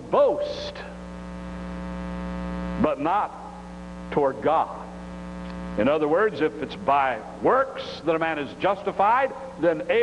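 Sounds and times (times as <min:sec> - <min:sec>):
man speaking: 0:00.0 - 0:01.0, 0:02.8 - 0:05.0, 0:05.8 - 0:10.0
electrical mains hum: 0:00.0 - 0:10.0.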